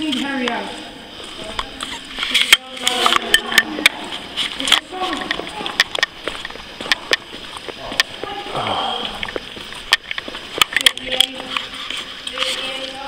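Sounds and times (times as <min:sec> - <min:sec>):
footsteps on rough floor: 0:00.0 - 0:13.0
indistinct talking: 0:00.0 - 0:13.0.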